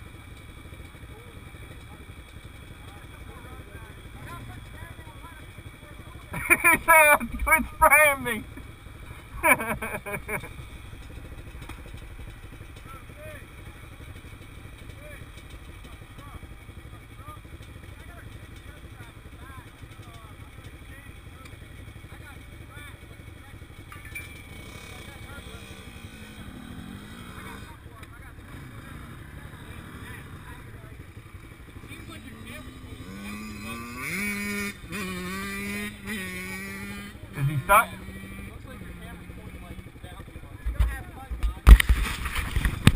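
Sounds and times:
dirt bike engine revving: 0.0s - 42.9s
dirt bike engines idling: 0.0s - 42.9s.

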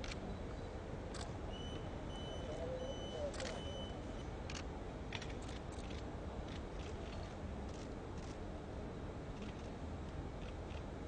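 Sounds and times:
outdoor background noise: 0.0s - 11.0s
camera shutters clicking: 3.3s - 3.7s.

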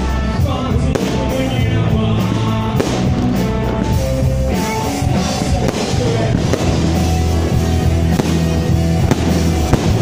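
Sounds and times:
loud music with bass line: 0.0s - 10.0s
fireworks bursting with sharp bangs: 0.4s - 10.0s.

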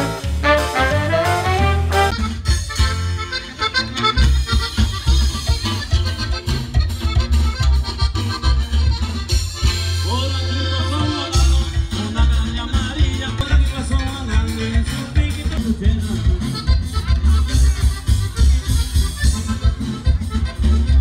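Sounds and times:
accordion: 0.0s - 21.0s
live band playing latin music: 0.0s - 21.0s
loud bass beat: 0.0s - 21.0s.

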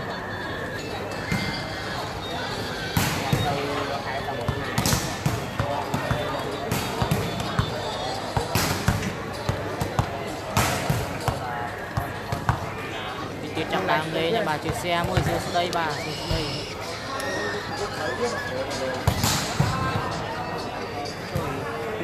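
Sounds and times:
crowd chatter: 0.0s - 22.0s
volleyball hits: 3.0s - 3.8s, 4.4s - 12.8s, 15.0s - 15.4s, 19.0s - 20.0s.

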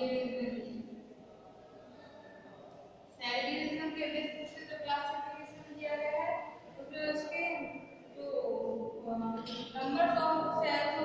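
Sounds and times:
woman speaking: 3.2s - 11.0s.

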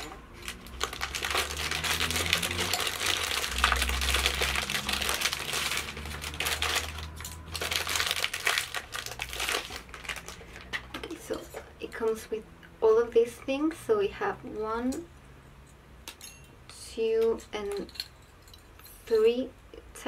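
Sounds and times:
plastic packaging crinkling: 0.0s - 11.4s.

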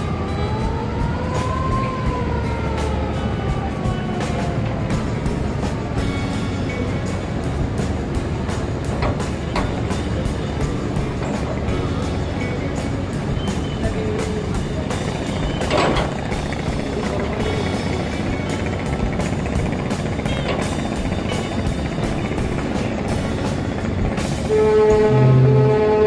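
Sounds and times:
boat engine rumbling and clattering: 0.0s - 26.0s
music: 0.0s - 26.0s.

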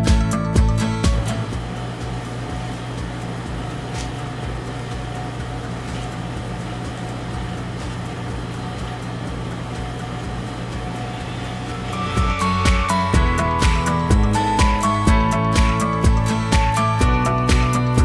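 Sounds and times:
cooling machinery humming: 0.0s - 18.0s.

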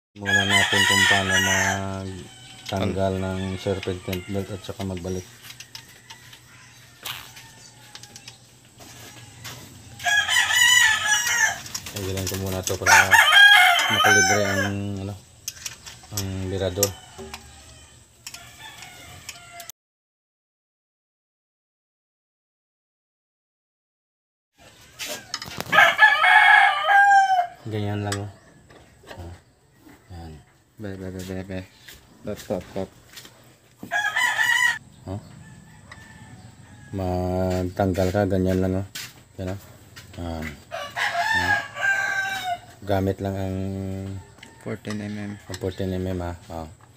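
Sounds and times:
rooster crowing: 0.2s - 14.9s, 16.4s - 19.7s, 24.6s - 27.7s, 33.8s - 37.5s, 40.5s - 42.8s, 44.0s - 45.8s.

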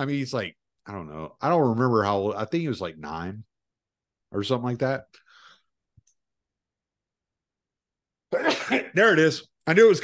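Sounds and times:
person sneezing: 8.3s - 9.0s.

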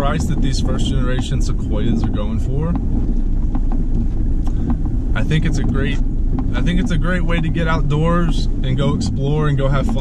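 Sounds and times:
vehicle cabin rumble: 0.0s - 10.0s
wind noise: 0.0s - 10.0s.

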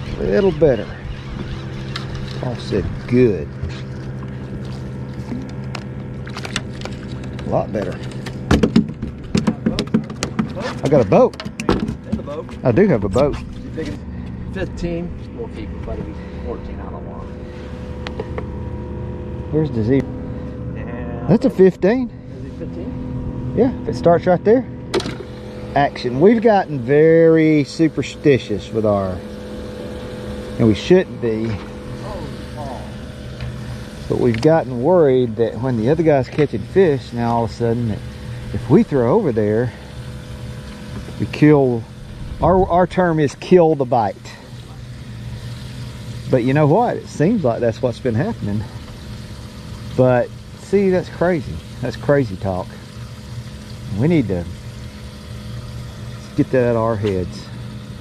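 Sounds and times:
boat motor humming: 0.0s - 58.0s.

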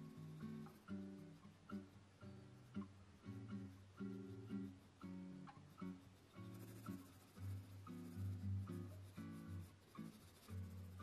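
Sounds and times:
pencil scratching on paper: 0.0s - 2.8s, 3.4s - 11.0s
quiet guitar music: 0.0s - 11.0s.

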